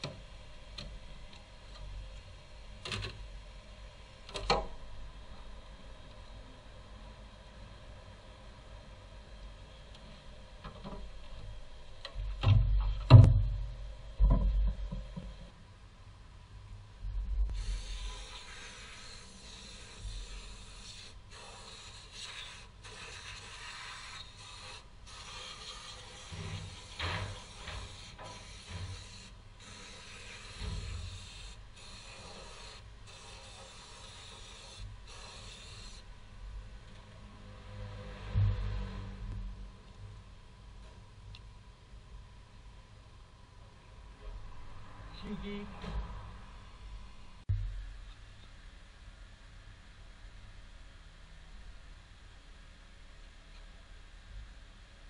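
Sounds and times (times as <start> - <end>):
aerosol spray can hissing: 17.5 - 36.0.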